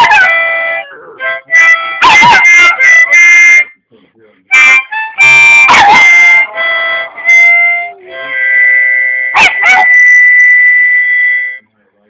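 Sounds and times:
dog howling: 0:00.0 - 0:01.4, 0:09.4 - 0:10.2
harmonica chord: 0:00.0 - 0:03.8, 0:04.5 - 0:11.7.

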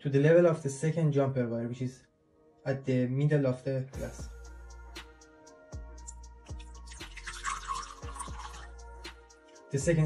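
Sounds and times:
background music: 0:00.0 - 0:10.0
water pouring into a glass: 0:06.5 - 0:08.8.

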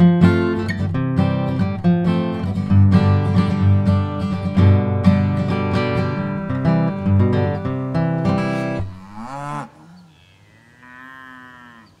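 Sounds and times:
acoustic guitar music: 0:00.0 - 0:09.0
cow mooing: 0:08.4 - 0:12.0.

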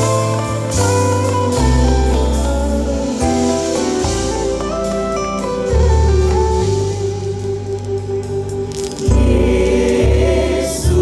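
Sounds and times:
plucked guitar melody: 0:00.0 - 0:10.1
deep bass notes: 0:00.0 - 0:11.0.

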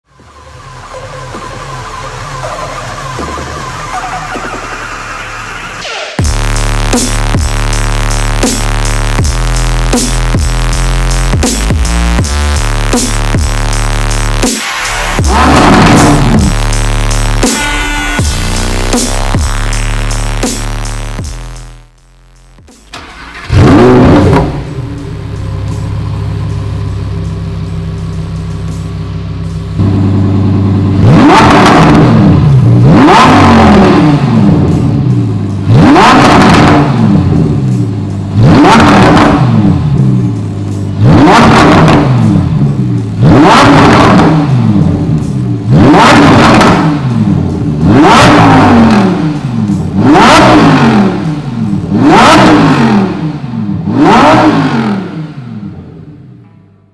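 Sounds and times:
sports car engine idling: 0:00.0 - 0:56.4
sharp engine revs: 0:01.9 - 0:21.9, 0:22.8 - 0:25.8, 0:29.8 - 0:56.2.

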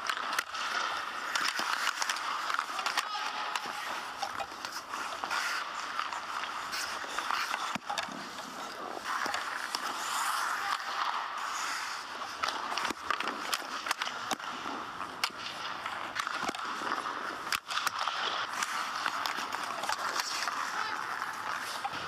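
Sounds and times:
hockey sticks and pucks clacking: 0:00.0 - 0:22.0
skates scraping on ice: 0:00.0 - 0:22.0.

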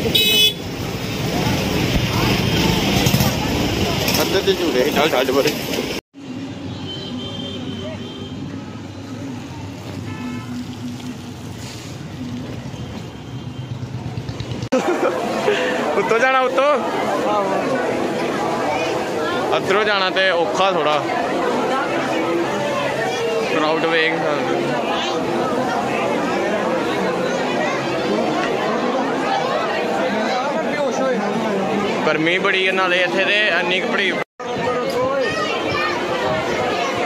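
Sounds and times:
motorcycle engine rumbling: 0:00.0 - 0:06.5, 0:08.3 - 0:15.9
crowd chatter: 0:00.0 - 0:37.0
voices: 0:00.0 - 0:37.0.

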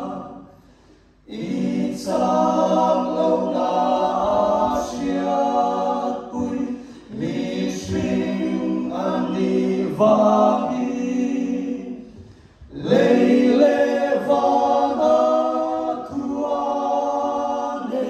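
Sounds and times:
vocal group singing in harmony: 0:00.0 - 0:18.0.

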